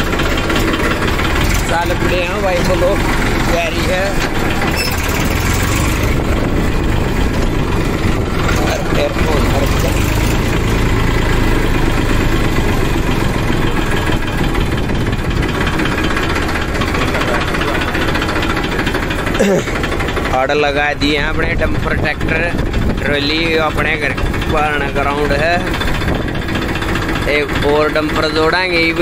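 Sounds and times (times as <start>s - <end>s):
tractor diesel engine running: 0.0s - 29.0s.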